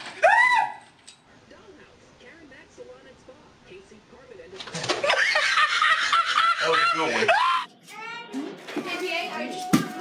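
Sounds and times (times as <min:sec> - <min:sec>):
people talking: 0:01.5 - 0:04.9, 0:08.0 - 0:10.0
people laughing: 0:04.8 - 0:07.6.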